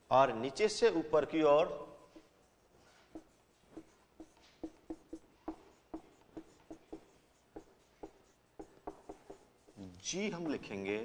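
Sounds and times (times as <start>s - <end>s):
marker writing on whiteboard: 0.7s - 11.0s.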